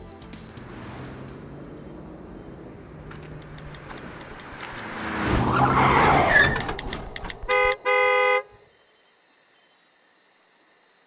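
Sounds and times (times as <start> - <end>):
car passing by: 0.1 - 8.1
faint crickets: 0.7 - 11.0
car horn beeping: 6.3 - 8.6.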